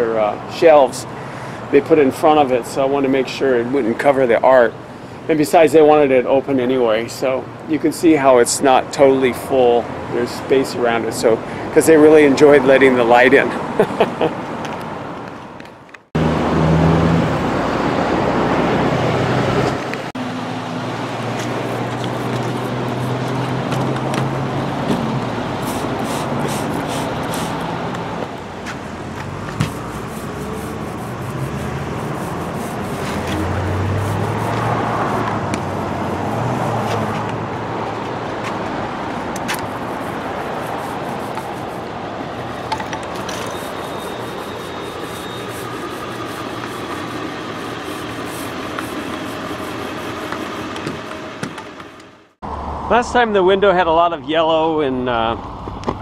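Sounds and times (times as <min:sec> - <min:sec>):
cars passing: 0:07.5 - 0:15.6, 0:16.2 - 0:56.0.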